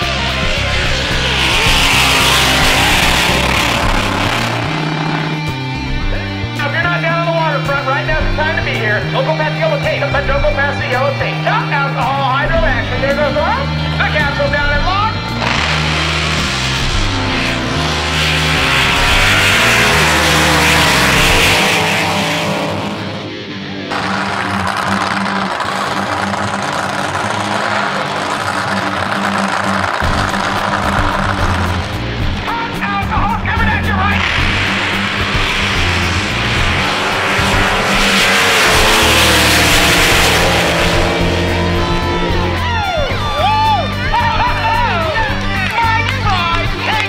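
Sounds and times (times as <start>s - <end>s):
drag boat engine roaring: 0.0s - 47.0s
rock music with bass line: 0.0s - 47.0s.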